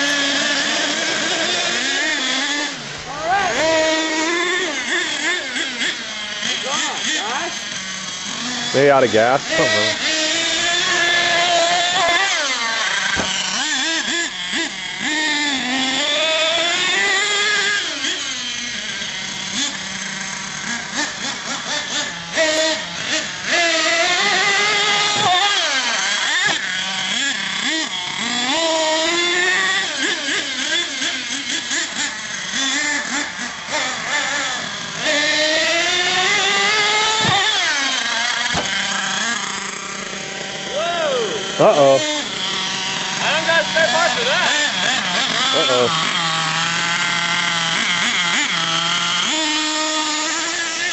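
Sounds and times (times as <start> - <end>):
small nitro engine revving: 0.0 - 50.9.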